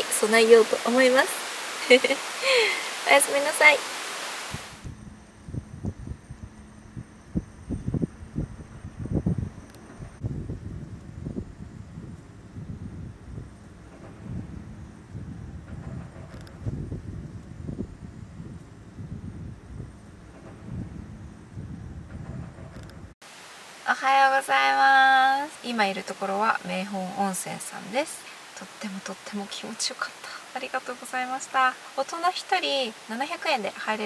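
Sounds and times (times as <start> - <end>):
wind buffeting microphone: 0.0 - 23.2.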